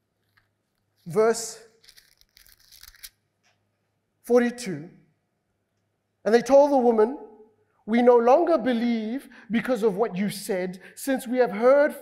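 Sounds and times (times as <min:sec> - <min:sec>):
paper pages rustling: 0:01.8 - 0:03.2.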